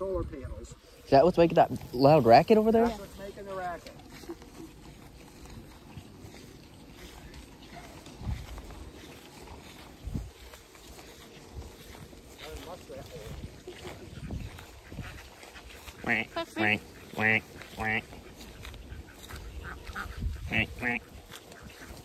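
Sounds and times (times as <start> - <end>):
ducks quacking faintly: 1.8 - 22.0.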